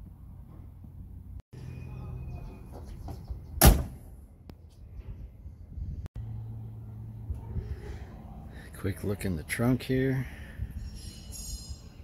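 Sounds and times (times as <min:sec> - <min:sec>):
car door slamming: 0:03.6 - 0:04.0.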